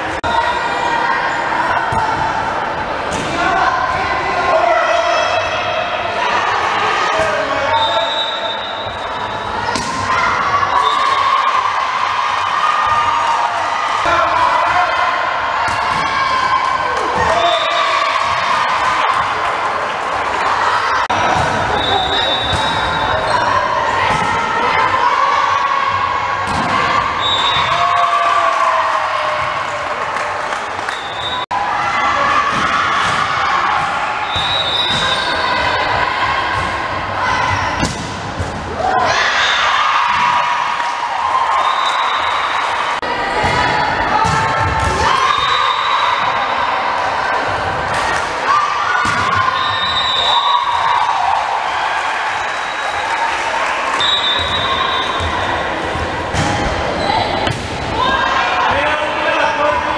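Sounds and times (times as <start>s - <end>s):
players and spectators shouting: 0.0s - 59.9s.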